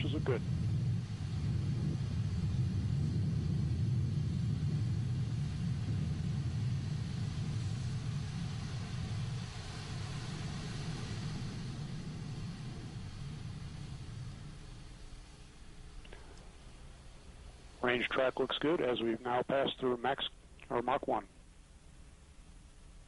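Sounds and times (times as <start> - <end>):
rocket engine rumble: 0.0 - 23.0.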